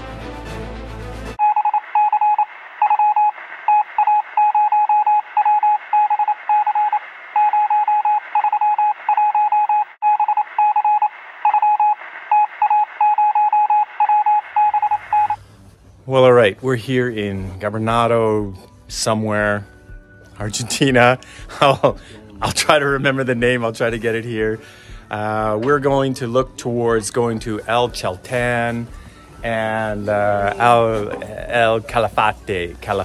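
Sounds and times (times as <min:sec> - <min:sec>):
music: 0:00.0 - 0:01.4, 0:16.3 - 0:33.0
morse code beeps: 0:01.4 - 0:15.4.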